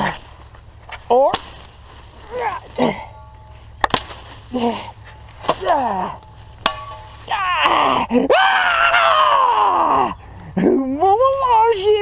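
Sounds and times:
machete striking sapling: 0.0 - 8.1.

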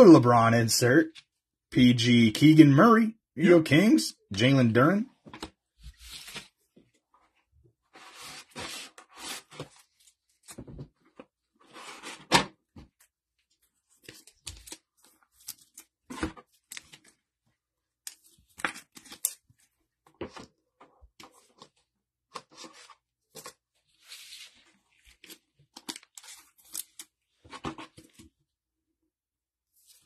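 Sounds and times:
cards rustling and sliding: 5.8 - 6.6, 8.0 - 10.6, 13.9 - 17.2, 18.1 - 19.6, 21.2 - 28.3.

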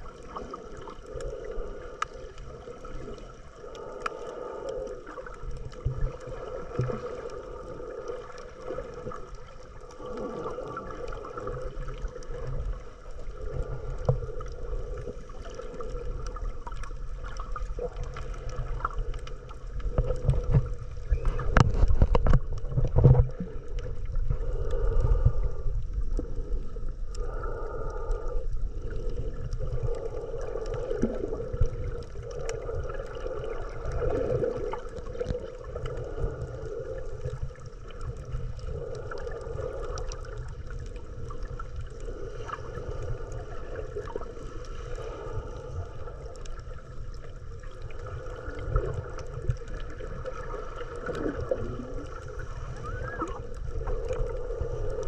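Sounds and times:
muffled underwater rumble: 0.0 - 55.0
water gurgling: 0.0 - 55.0
faint clicks: 0.2 - 55.0.

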